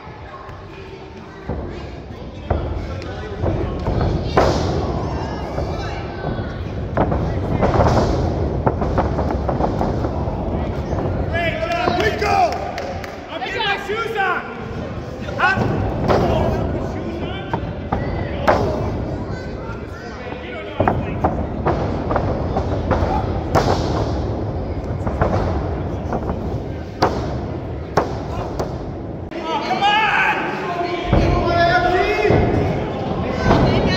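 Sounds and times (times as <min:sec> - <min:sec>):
crowd shouting and chatter: 0:00.0 - 0:33.9.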